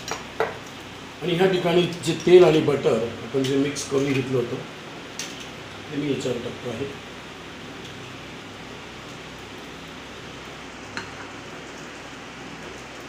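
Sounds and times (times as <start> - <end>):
food sizzling in oil: 0.0 - 13.0.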